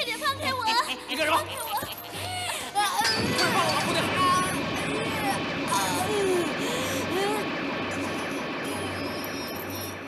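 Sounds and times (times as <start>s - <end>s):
steady background din: 0.0s - 10.0s.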